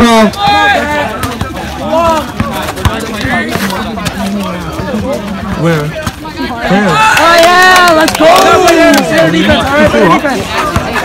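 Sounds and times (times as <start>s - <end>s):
people calling out: 0.0s - 11.0s
basketball bouncing on asphalt: 0.9s - 6.6s, 10.6s - 11.0s.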